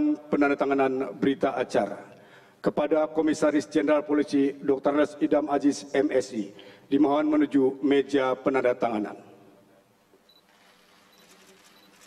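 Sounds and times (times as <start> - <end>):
man making announcement: 0.0 - 9.4.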